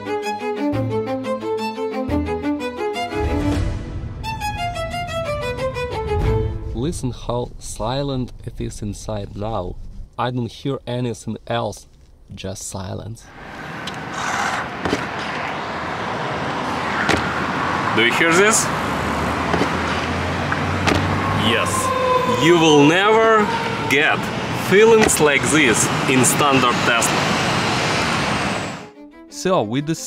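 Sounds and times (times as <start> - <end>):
city street traffic rumble: 13.3 - 28.9.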